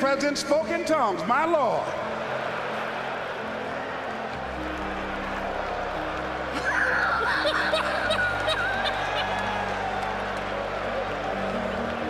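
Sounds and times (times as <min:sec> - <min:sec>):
background music: 0:00.0 - 0:12.0
laughter in short bursts: 0:06.6 - 0:09.6.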